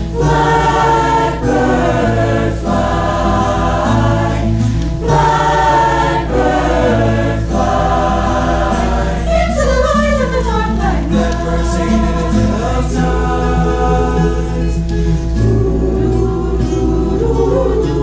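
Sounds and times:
acoustic guitar: 0.0s - 18.0s
choir singing: 0.0s - 18.0s.

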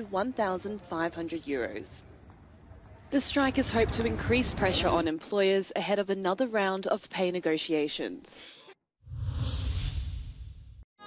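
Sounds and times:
whoosh: 9.0s - 10.8s.

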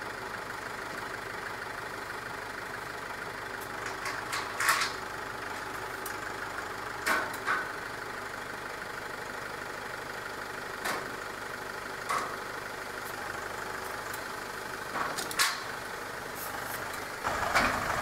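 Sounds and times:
tractor engine running: 0.0s - 18.0s.

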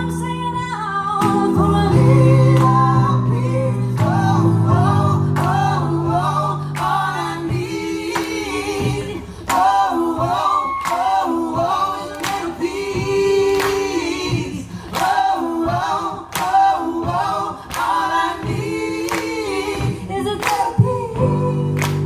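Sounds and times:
group singing unaccompanied: 1.3s - 22.0s
handclaps: 12.1s - 12.5s, 16.3s - 16.8s, 20.4s - 20.9s, 21.8s - 22.0s.

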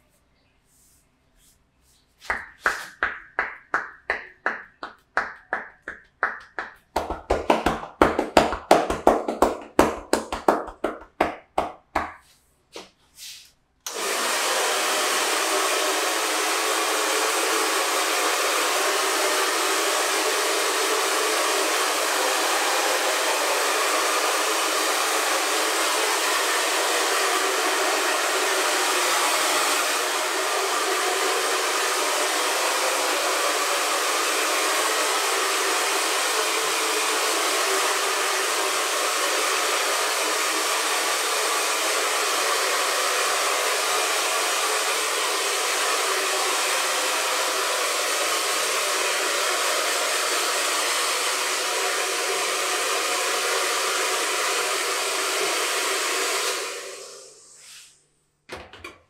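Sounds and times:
hair dryer running: 6.6s - 12.2s, 13.9s - 57.9s.

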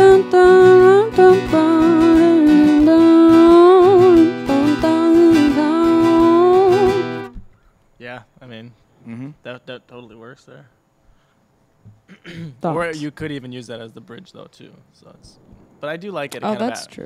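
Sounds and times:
woman singing long notes: 0.0s - 7.3s
strummed acoustic guitar: 0.0s - 7.4s.

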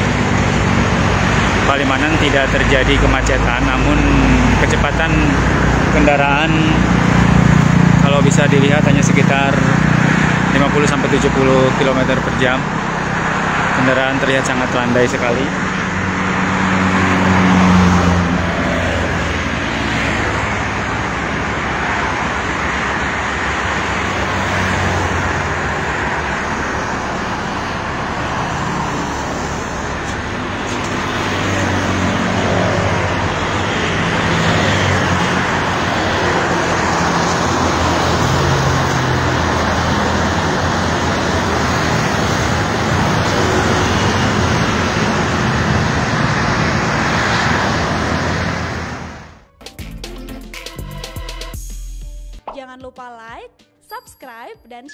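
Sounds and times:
traffic tyre and engine rumble: 0.0s - 49.6s
vehicles passing: 0.0s - 49.6s.

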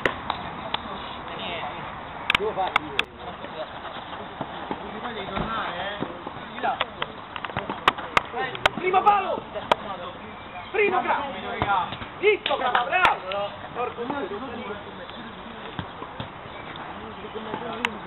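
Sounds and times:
football being kicked: 7.6s - 8.0s, 11.5s - 12.1s.

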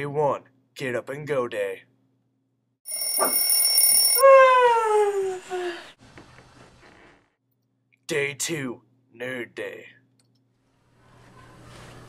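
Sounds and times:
alarm clock ringing: 2.9s - 4.2s.

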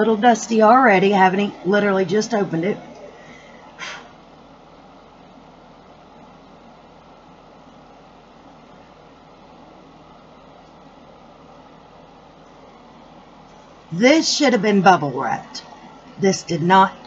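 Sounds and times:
room noise hiss: 0.0s - 17.0s.

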